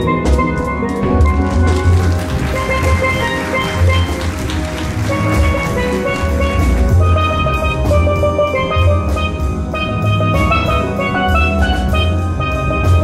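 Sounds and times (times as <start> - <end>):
drums: 0.0 - 13.0
steel pans playing melody: 0.0 - 13.0
bass pans: 1.0 - 13.0.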